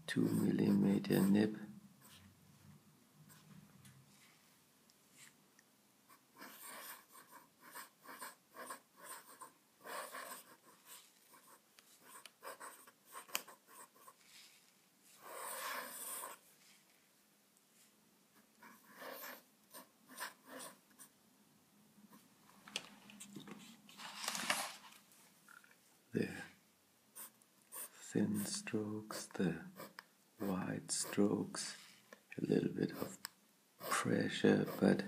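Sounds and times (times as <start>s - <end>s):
pen nib scratching on paper: 6.4s - 14.4s, 15.1s - 16.4s, 18.4s - 21.1s, 27.2s - 31.7s, 32.9s - 35.0s.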